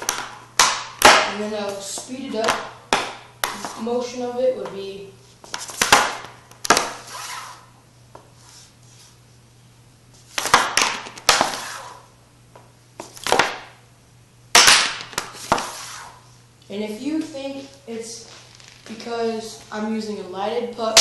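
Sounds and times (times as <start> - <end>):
hockey puck and stick clacking: 0.0 - 3.9, 5.4 - 7.6, 10.4 - 12.0, 14.6 - 16.2
stick scraping floor: 1.0 - 9.2, 10.2 - 12.1, 15.0 - 16.2.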